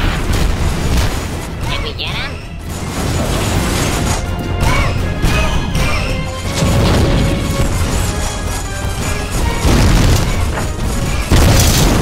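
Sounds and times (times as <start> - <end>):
background music: 0.0 - 12.0
explosions: 0.0 - 12.0.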